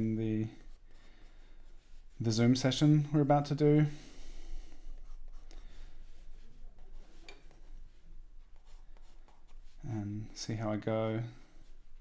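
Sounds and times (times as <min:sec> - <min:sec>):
pencil scratching on paper: 0:00.5 - 0:02.4, 0:05.0 - 0:09.8.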